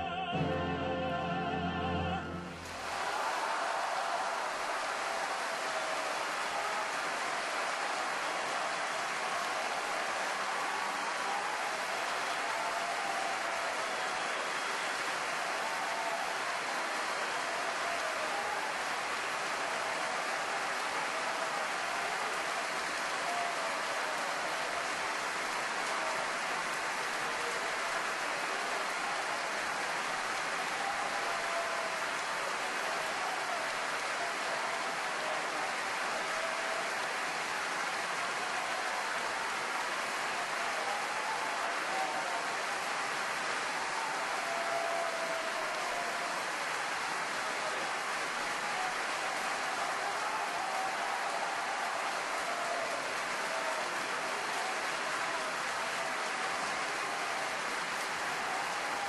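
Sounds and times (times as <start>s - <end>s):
audience applauding: 0.0s - 59.0s
people cheering: 0.0s - 59.0s.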